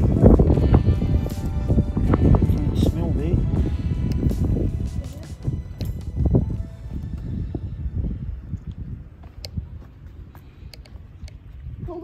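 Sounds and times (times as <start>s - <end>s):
wind buffeting microphone: 0.0s - 12.0s
sharp clicks: 10.7s - 11.4s.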